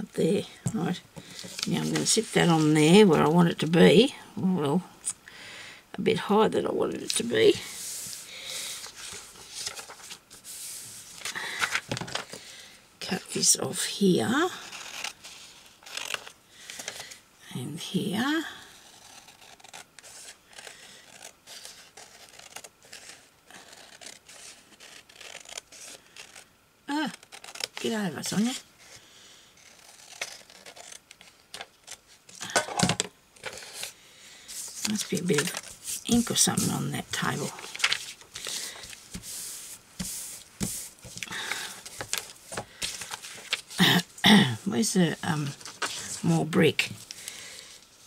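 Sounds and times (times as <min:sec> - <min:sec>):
paper rustling and sliding: 0:07.5 - 0:12.5, 0:33.4 - 0:43.8, 0:45.4 - 0:48.0
scissors snipping paper: 0:18.8 - 0:28.5.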